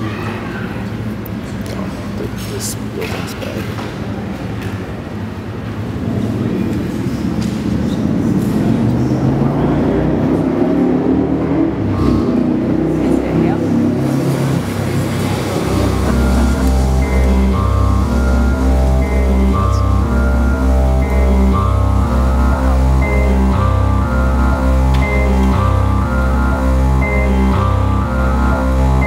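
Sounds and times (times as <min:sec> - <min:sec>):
murky shifting low synth sound: 0:07.9 - 0:29.0
pulsing synth bass: 0:09.1 - 0:29.0
repeating high synth notes: 0:14.3 - 0:29.0.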